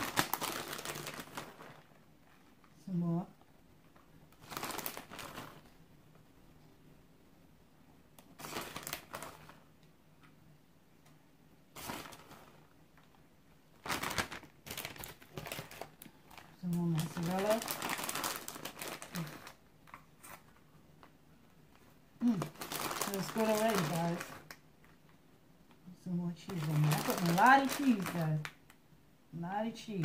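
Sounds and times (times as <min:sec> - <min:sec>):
plastic bag crinkling: 0:00.0 - 0:02.7, 0:03.3 - 0:05.8, 0:08.2 - 0:09.7, 0:11.7 - 0:25.2, 0:26.4 - 0:28.7
person speaking: 0:02.7 - 0:03.4, 0:16.5 - 0:18.1, 0:22.2 - 0:24.5, 0:25.8 - 0:28.5, 0:29.3 - 0:30.0.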